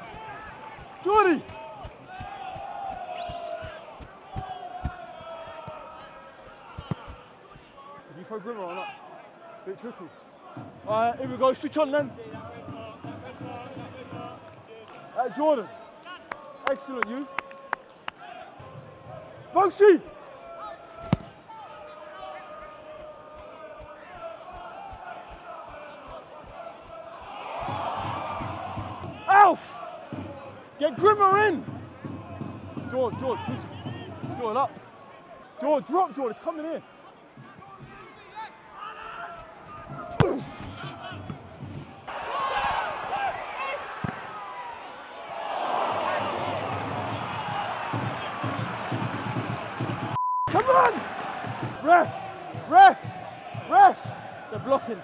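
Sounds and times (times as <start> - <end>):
football kicked: 0.0 - 7.7, 21.0 - 21.4, 39.3 - 42.1, 44.0 - 44.4
soft low thuds: 0.0 - 7.7
distant players calling: 0.0 - 7.8
distant shouts from players and crowd: 0.0 - 10.9, 11.5 - 55.0
football being kicked thuds: 6.7 - 7.3, 21.0 - 21.4, 39.7 - 41.9, 44.0 - 44.3.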